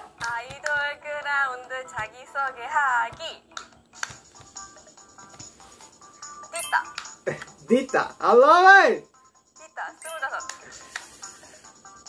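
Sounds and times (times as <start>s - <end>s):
woman speaking brightly: 9.6s - 10.6s.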